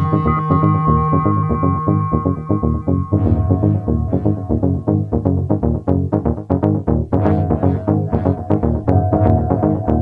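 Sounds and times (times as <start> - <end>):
heavy bass line: 0.0 - 10.0
pulsing synthesizer notes: 0.0 - 10.0
held high tone: 7.2 - 10.0.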